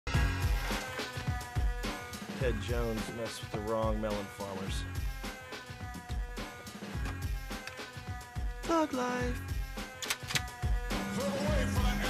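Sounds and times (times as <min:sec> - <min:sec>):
soundtrack music with steady beat: 0:00.1 - 0:12.0.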